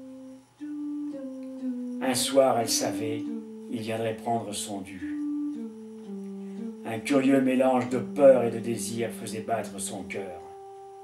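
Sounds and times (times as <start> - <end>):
slow low held music notes: 0.0 - 11.0.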